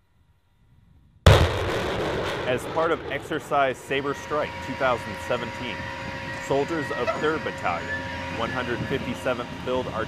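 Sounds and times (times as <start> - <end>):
faint low rumble: 0.0 - 8.0
rocket launch blast: 1.3 - 4.3
rocket motor noise: 1.3 - 10.0.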